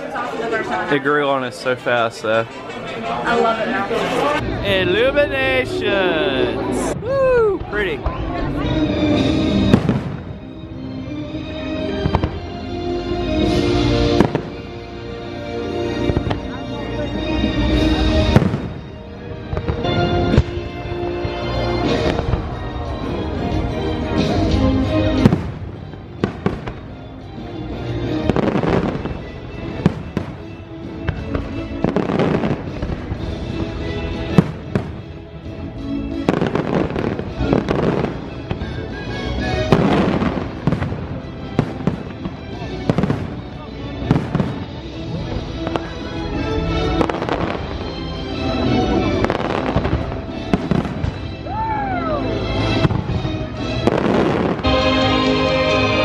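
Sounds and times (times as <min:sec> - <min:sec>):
fireworks bangs and crackles: 0:04.1 - 0:55.8
music over loudspeakers: 0:04.3 - 0:07.0, 0:07.7 - 0:56.0.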